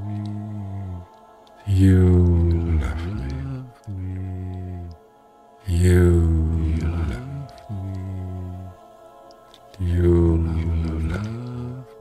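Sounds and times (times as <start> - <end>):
man chanting low tone: 0.0 - 5.0, 5.7 - 8.8, 9.8 - 12.0.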